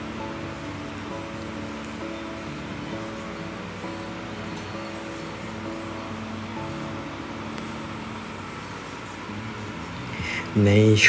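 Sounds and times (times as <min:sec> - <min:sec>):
soft instrumental backing track: 0:00.0 - 0:11.0.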